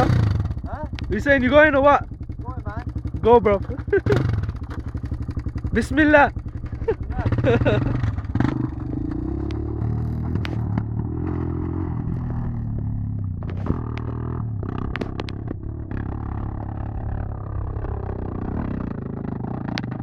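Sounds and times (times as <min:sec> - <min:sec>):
quad bike engine running hard: 0:00.0 - 0:20.0.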